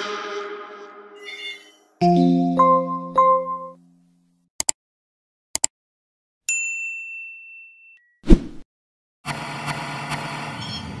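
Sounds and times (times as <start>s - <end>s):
notification bell ding: 1.2s - 4.0s.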